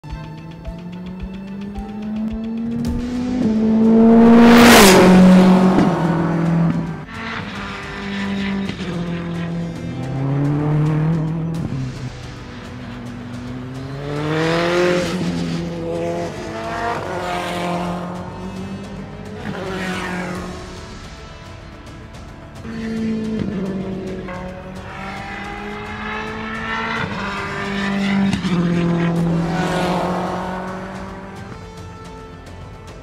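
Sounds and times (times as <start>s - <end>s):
music: 0.0s - 33.0s
race car engine revving: 0.0s - 33.0s.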